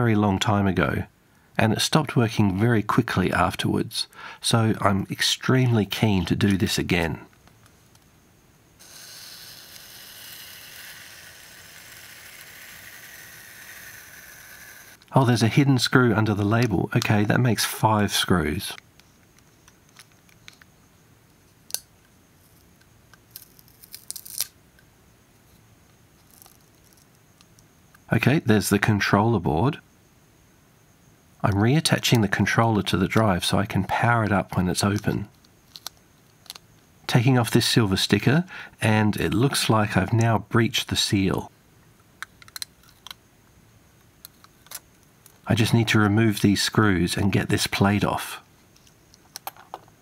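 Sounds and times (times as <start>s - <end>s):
tools clicking on metal casing: 42.2s - 43.2s.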